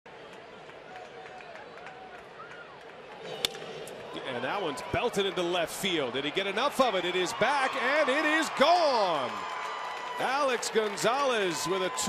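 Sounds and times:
wooden bat hitting ball: 3.3s - 4.1s.

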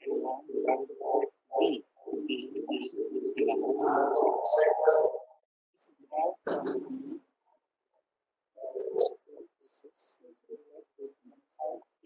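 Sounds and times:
lecturer speaking: 0.0s - 7.6s, 8.6s - 12.0s.

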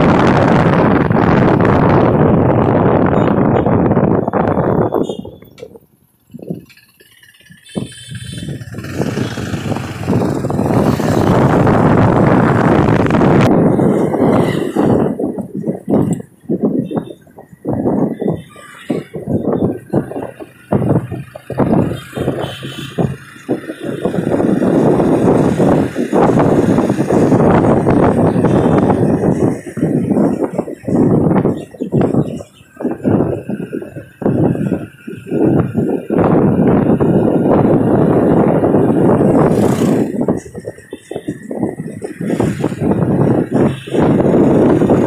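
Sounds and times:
motorcycle engine and road noise: 0.0s - 45.0s
wind rushing over microphone: 0.0s - 45.0s.

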